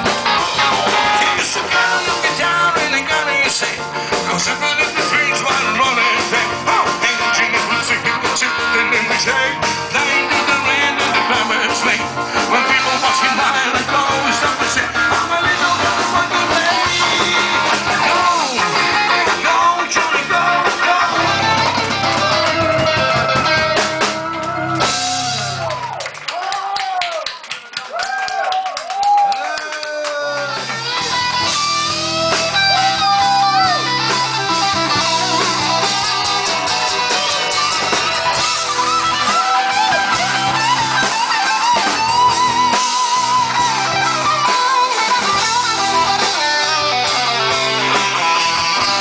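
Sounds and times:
sliding bending guitar lead: 0:00.0 - 0:25.4, 0:30.6 - 0:49.0
live band playing instrumental: 0:00.0 - 0:26.0, 0:30.2 - 0:49.0.

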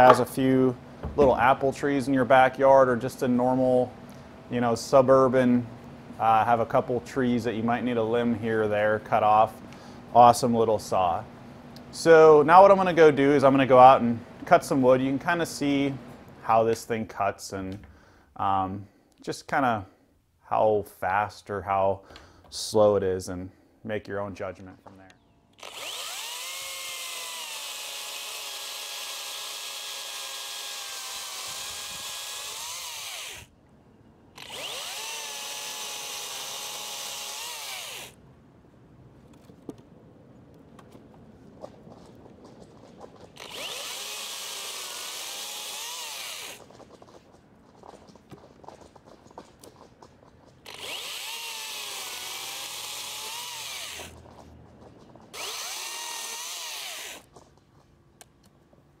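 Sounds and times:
handling noises: 0:00.0 - 0:01.8, 0:38.7 - 0:44.0, 0:46.2 - 0:51.3, 0:52.8 - 0:56.2, 0:57.1 - 0:59.0
electric chainsaw cutting wood: 0:25.6 - 0:33.5, 0:34.4 - 0:38.2, 0:43.4 - 0:46.7, 0:50.6 - 0:54.2, 0:55.3 - 0:57.3.

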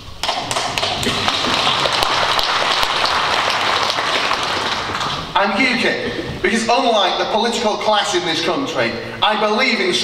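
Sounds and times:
audience applauding: 0:00.2 - 0:05.4.

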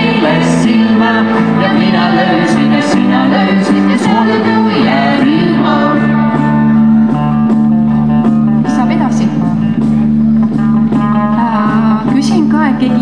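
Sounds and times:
folk melody with gliding notes: 0:00.0 - 0:13.0.

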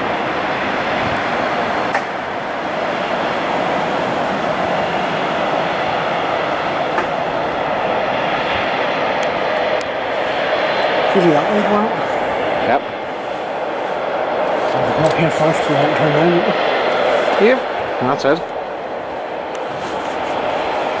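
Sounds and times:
turboprop engines droning: 0:00.0 - 0:21.0.

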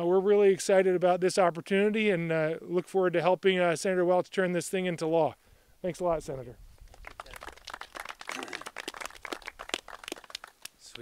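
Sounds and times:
group applauding: 0:06.9 - 0:11.0.

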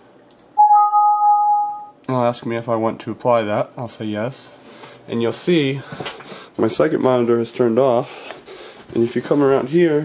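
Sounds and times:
two-note electronic alert chime: 0:00.6 - 0:02.0.

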